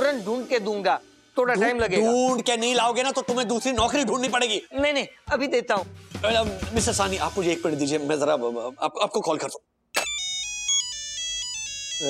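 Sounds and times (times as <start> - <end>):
phone ringtone melody: 10.0 - 12.0.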